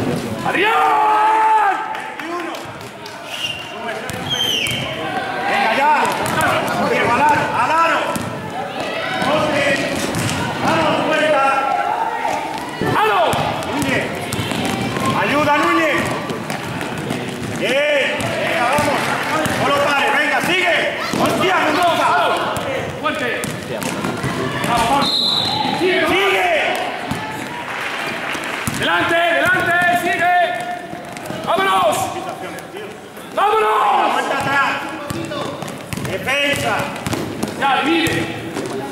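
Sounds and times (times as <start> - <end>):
shouting voices: 4.3 - 16.4, 17.6 - 23.2, 23.9 - 27.8, 33.3 - 35.6
basketball dribbling on court floor: 6.1 - 6.6, 13.3 - 19.7, 22.6 - 25.0, 28.4 - 31.6, 34.4 - 38.9.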